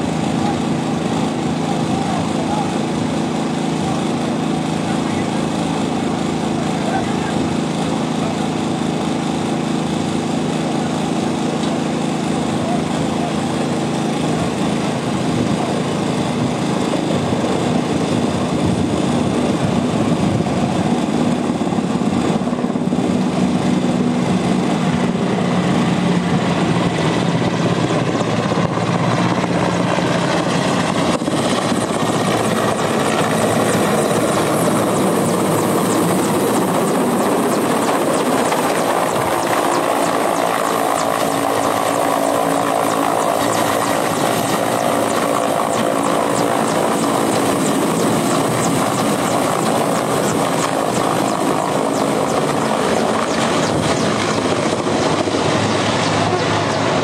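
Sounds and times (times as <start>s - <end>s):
helicopter rotor and turbine: 0.0s - 57.0s
truck engines and pumps running: 0.0s - 57.0s.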